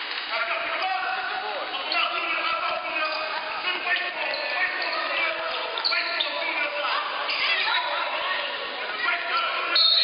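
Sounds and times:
voices of people: 0.2s - 10.0s.

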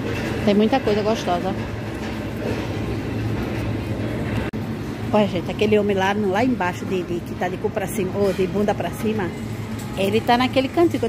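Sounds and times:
low hum and rumble: 0.0s - 11.0s.

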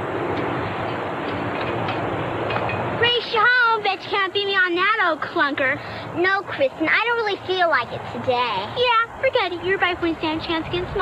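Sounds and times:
bicycles rolling on concrete: 0.0s - 11.0s.

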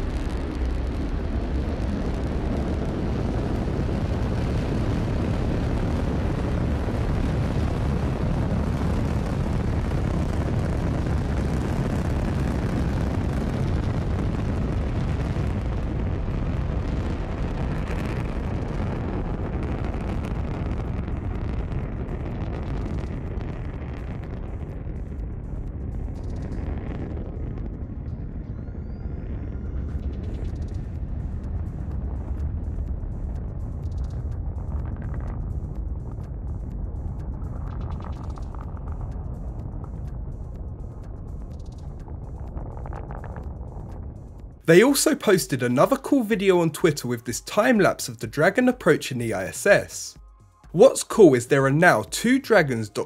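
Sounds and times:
rocket exhaust rumble: 0.0s - 53.0s.

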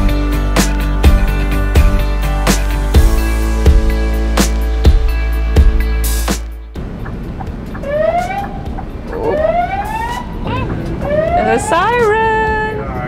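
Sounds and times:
truck engine rumbling: 0.0s - 13.0s
fire truck siren: 7.8s - 12.0s.

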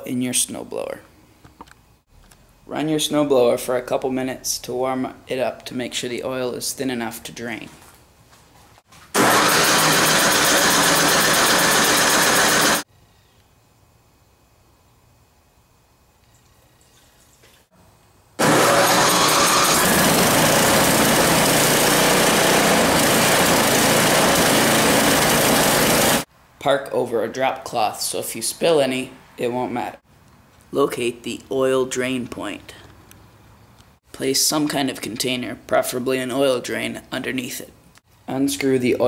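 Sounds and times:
snowblower engine running: 9.2s - 12.9s, 18.4s - 26.3s.

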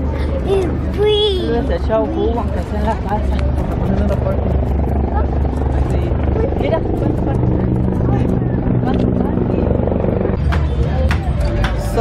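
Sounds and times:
low engine drone: 0.0s - 12.0s
people talking: 0.0s - 12.0s.

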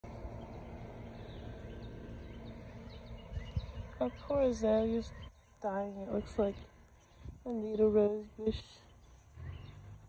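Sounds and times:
steady low rumble: 0.0s - 10.0s
faint bird chirps: 0.3s - 10.0s.

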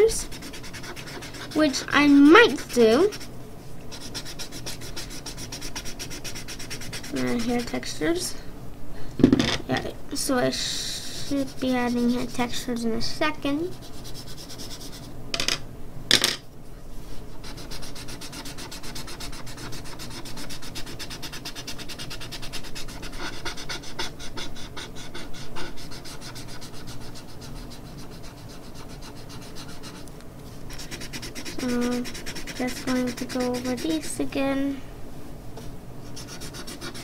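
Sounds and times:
scratchy rubbing on paper: 0.0s - 3.3s, 3.9s - 8.0s, 11.1s - 12.6s, 13.6s - 15.1s, 17.3s - 30.0s, 30.7s - 34.4s, 36.1s - 37.0s.

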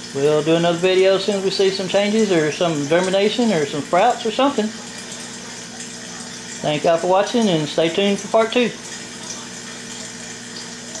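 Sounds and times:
air pump humming: 0.0s - 11.0s
water spraying and dripping: 0.0s - 11.0s.

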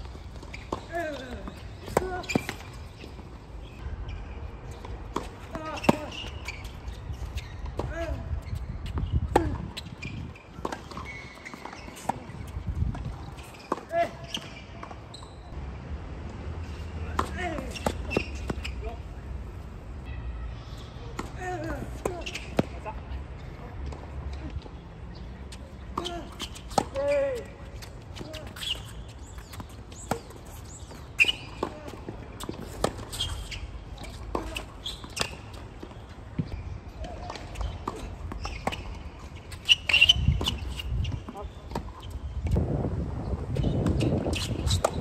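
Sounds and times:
shoe squeaks: 0.0s - 15.6s, 16.9s - 19.3s, 20.0s - 23.7s, 24.3s - 42.5s, 43.6s - 45.0s.

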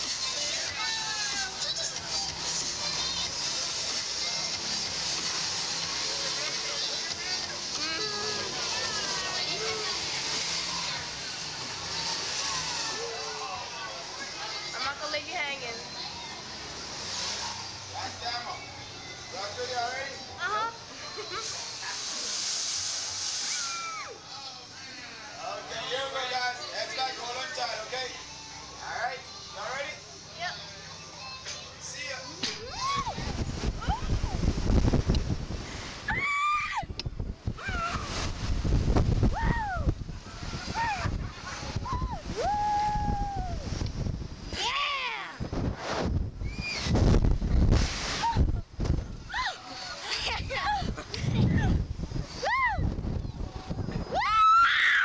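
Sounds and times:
kids screaming and shrieking: 0.0s - 4.8s, 5.5s - 15.0s, 15.8s - 21.8s, 23.2s - 24.6s, 32.3s - 34.5s, 36.0s - 38.4s, 39.2s - 43.8s, 44.5s - 45.5s, 46.4s - 47.0s, 48.0s - 55.0s
pneumatic air hiss: 21.4s - 24.0s
wind rumbling on microphone: 32.6s - 49.5s, 50.2s - 54.6s
short falling squeal: 46.4s - 47.0s.

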